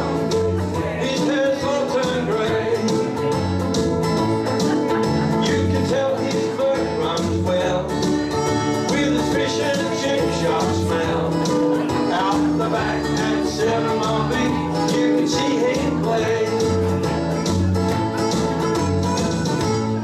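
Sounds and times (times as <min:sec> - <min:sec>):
low bass notes: 0:00.0 - 0:20.0
ukulele band strumming chords: 0:00.0 - 0:20.0.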